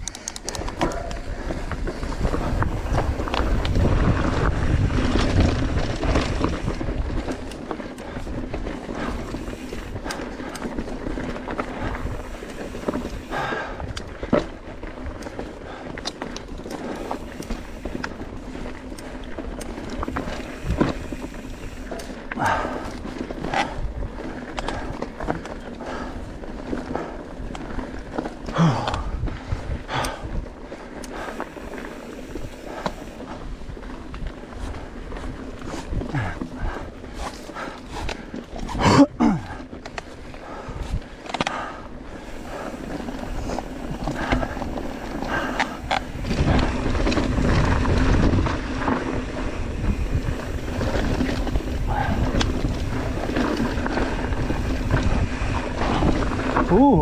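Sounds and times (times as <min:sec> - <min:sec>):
wind rushing over microphone: 0:00.0 - 0:10.2, 0:28.6 - 0:31.3, 0:40.5 - 0:57.0
bike rattling over bumps: 0:00.0 - 0:57.0
tyres crunching over gravel: 0:00.2 - 0:57.0.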